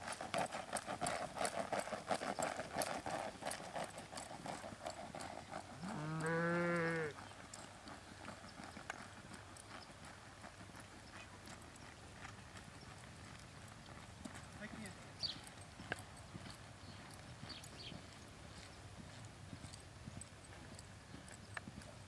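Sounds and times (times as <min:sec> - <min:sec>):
hoofbeats on soft dirt: 0:00.0 - 0:22.0.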